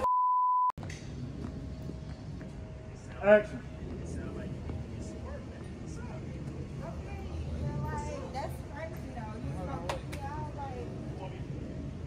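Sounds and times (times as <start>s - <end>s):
electronic beep tone: 0.0s - 0.7s
faint outdoor background noise: 0.8s - 12.0s.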